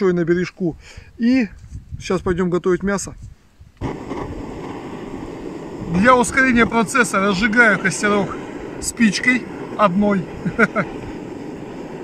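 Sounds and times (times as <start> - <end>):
gas torch hissing: 3.8 - 12.0.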